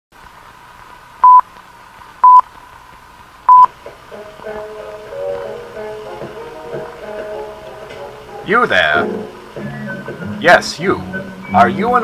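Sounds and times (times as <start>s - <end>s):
faint steady hiss: 0.2s - 12.0s
short loud beeps: 2.2s - 2.4s, 3.5s - 3.7s.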